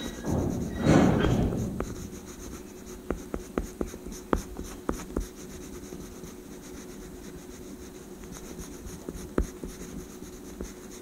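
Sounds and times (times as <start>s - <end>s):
oil pastel scratching on paper: 0.0s - 11.0s.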